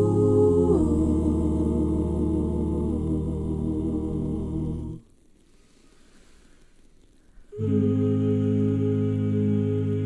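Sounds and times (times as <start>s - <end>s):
faint low background noise: 0.0s - 10.0s.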